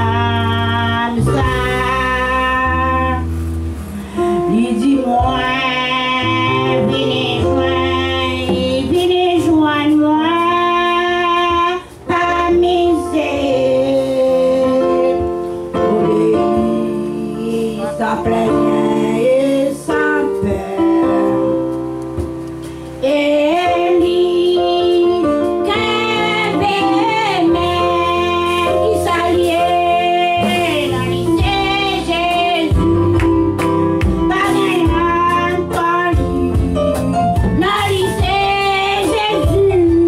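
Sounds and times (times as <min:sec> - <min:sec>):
woman singing a hymn: 0:00.0 - 0:03.4, 0:04.0 - 0:22.3, 0:23.0 - 0:40.0
amplified instrumental accompaniment: 0:00.0 - 0:40.0.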